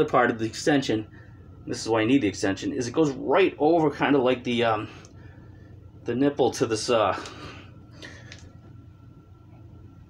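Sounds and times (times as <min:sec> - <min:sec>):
faint high whine: 0:00.0 - 0:10.0
low steady hum: 0:00.0 - 0:10.0.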